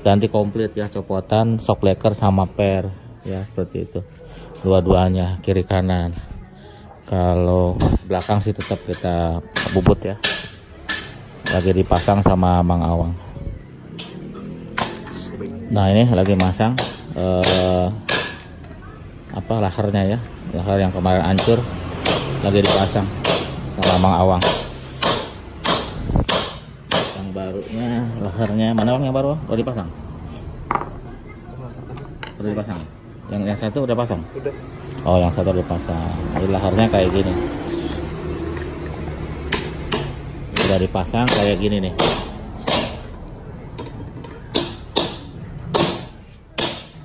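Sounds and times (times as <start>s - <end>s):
hammer on metal: 8.1s - 12.4s, 16.2s - 18.5s, 21.3s - 27.4s, 39.5s - 43.1s, 44.5s - 47.0s.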